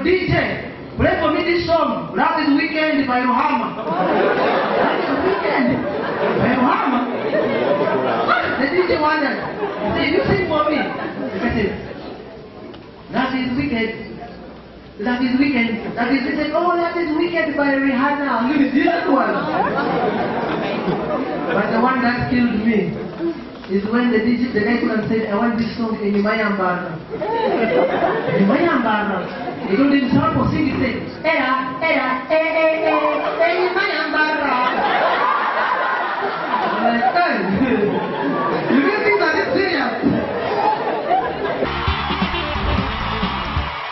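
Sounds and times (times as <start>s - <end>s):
audience chattering: 3.0s - 25.6s, 32.5s - 43.9s
audience laughing: 3.6s - 12.2s, 19.2s - 21.9s, 27.1s - 28.8s, 34.5s - 39.6s, 40.2s - 43.9s
music with steady bass: 41.6s - 43.9s.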